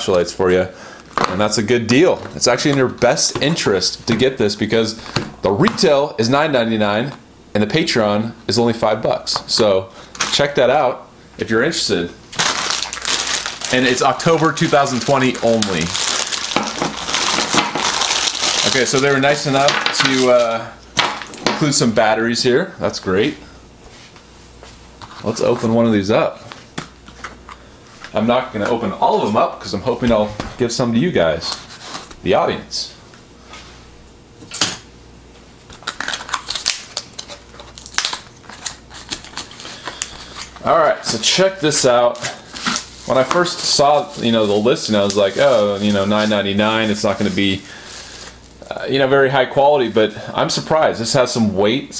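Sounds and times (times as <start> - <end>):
packaging wrap crinkling: 12.3 - 21.8, 35.6 - 48.6.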